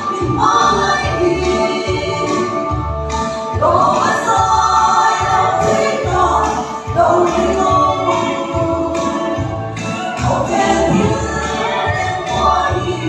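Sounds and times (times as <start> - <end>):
women singing gospel song: 0.0 - 13.0.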